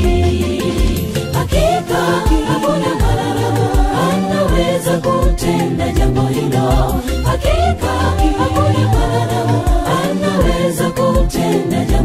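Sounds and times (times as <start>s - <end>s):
choir singing gospel: 0.0s - 12.0s
steady music beat: 0.0s - 12.0s.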